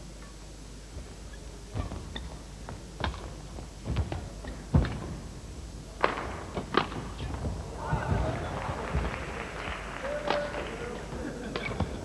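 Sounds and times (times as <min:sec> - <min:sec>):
racket hitting shuttlecock: 0:06.0 - 0:07.5
murmur of voices: 0:07.1 - 0:12.0.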